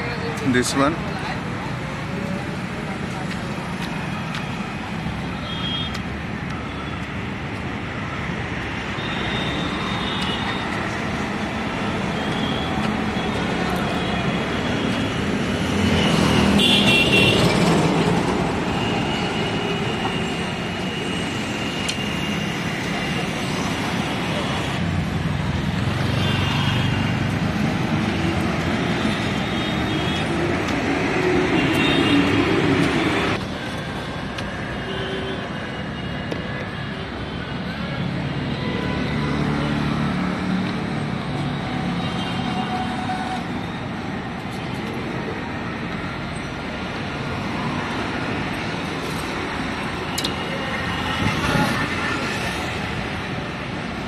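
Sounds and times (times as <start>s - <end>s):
road traffic passing: 0.0s - 54.0s.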